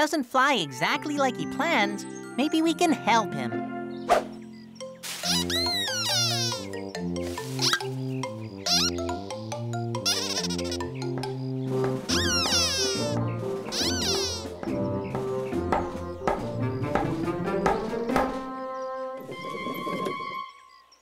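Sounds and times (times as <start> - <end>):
bouncy cartoon music: 0.4 - 20.5
squeaky gliding chirps: 4.3 - 15.0.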